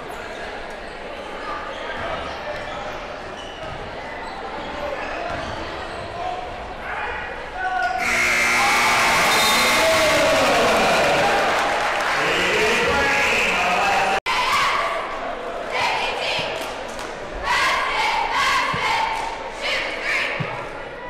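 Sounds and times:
scoreboard buzzer: 0:08.0 - 0:11.5
crowd cheering: 0:08.0 - 0:14.3
murmur of voices: 0:09.6 - 0:21.0.

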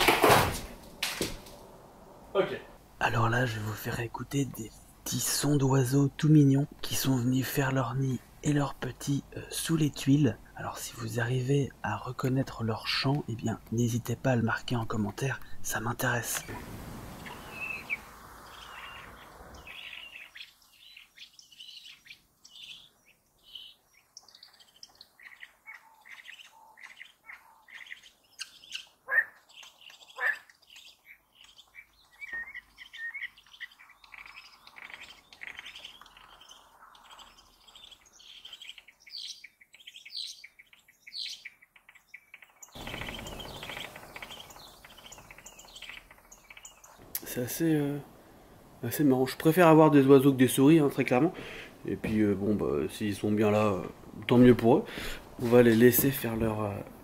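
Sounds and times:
loud falling bird calls: 0:00.0 - 0:02.5, 0:14.5 - 0:48.8
birds chirping and cheeping: 0:03.0 - 0:57.0.

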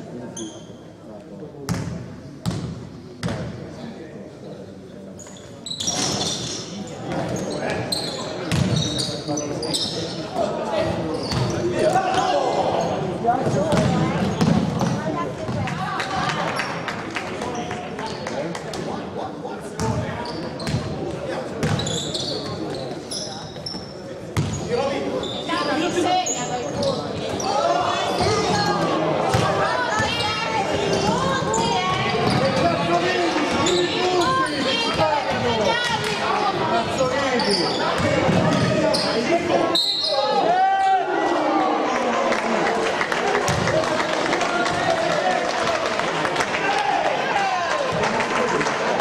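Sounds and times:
shoe squeaks: 0:00.4 - 0:00.8, 0:05.2 - 0:10.3, 0:11.1 - 0:13.0, 0:20.2 - 0:20.8, 0:21.6 - 0:28.5, 0:30.0 - 0:32.6, 0:33.6 - 0:34.8, 0:36.9 - 0:40.4
basketball bouncing: 0:08.5 - 0:08.8, 0:13.4 - 0:15.0, 0:21.6 - 0:21.8, 0:43.5 - 0:43.7.

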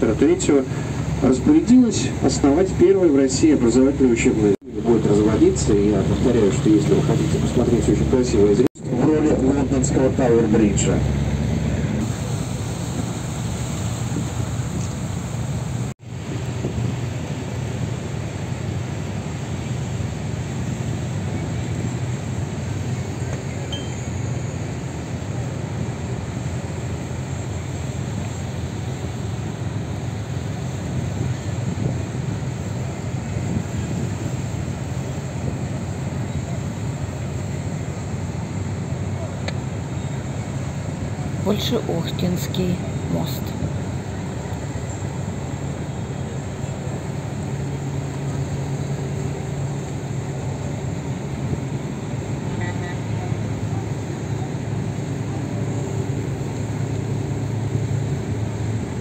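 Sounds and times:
boat engine drone: 0:00.0 - 0:59.0
constant low hum: 0:00.0 - 0:59.0
water noise: 0:00.0 - 0:59.0
wind: 0:00.0 - 0:59.0.

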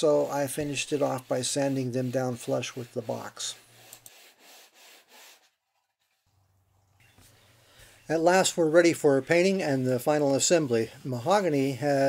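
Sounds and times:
wood rubbing on sandpaper: 0:00.0 - 0:06.2, 0:07.2 - 0:12.0.

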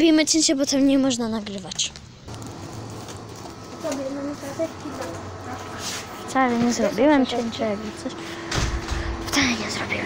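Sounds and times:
steady low hum: 0:02.1 - 0:10.0.

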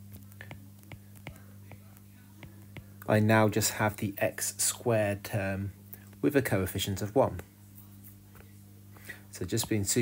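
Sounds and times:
steady low hum: 0:00.0 - 0:10.0
stylus tapping on glass screen: 0:00.1 - 0:03.1.

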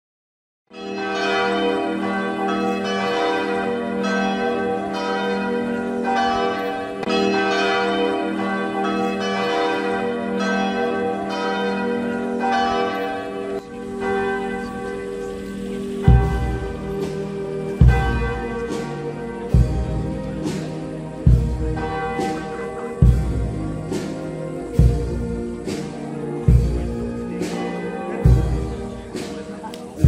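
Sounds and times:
church bells pealing: 0:00.7 - 0:30.0.

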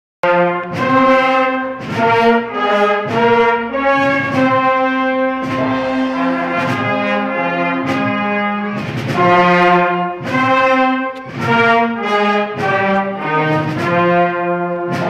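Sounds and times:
percussion strikes: 0:00.2 - 0:15.0
wind band playing slow march: 0:00.2 - 0:15.0.

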